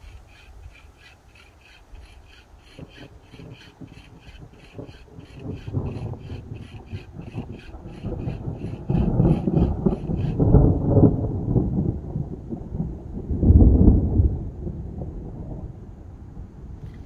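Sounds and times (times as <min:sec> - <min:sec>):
thunder rolling: 0:02.7 - 0:15.7.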